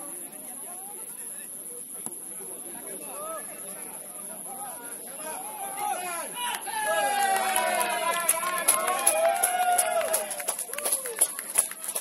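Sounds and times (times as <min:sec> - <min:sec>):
people shouting and calling out: 0:02.9 - 0:11.3.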